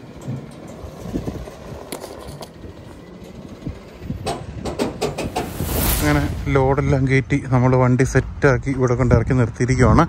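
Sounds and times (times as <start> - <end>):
rushing noise: 5.0 - 7.5.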